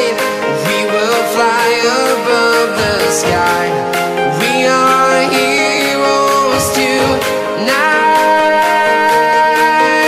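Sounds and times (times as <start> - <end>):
pop song with gliding melody: 0.0 - 10.0.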